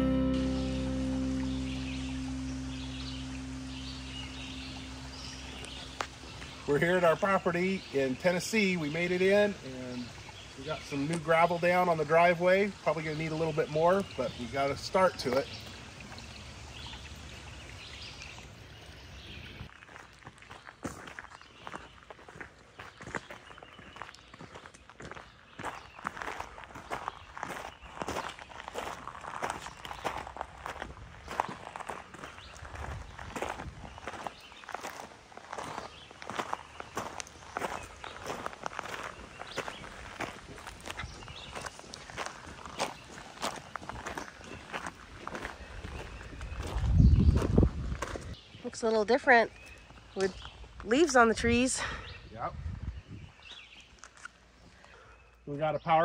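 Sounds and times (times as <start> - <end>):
low steady rumble: 0.0 - 6.8
footsteps crunching on gravel: 0.2 - 9.4, 19.7 - 48.4.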